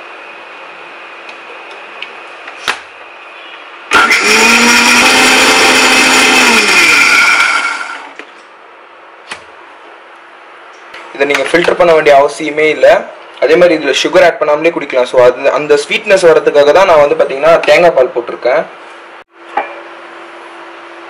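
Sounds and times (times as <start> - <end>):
mixer grinder motor running: 3.9 - 8.2.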